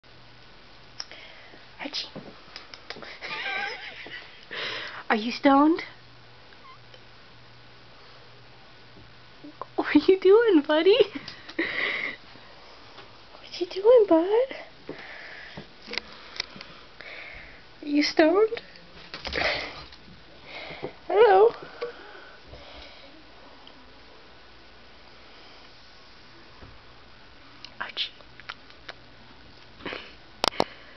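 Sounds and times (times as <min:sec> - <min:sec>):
steady hum: 0:00.0 - 0:30.9.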